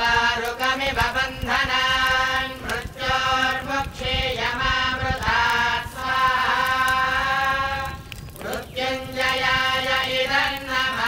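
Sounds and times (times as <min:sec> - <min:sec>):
priests chanting together: 0:00.0 - 0:11.0.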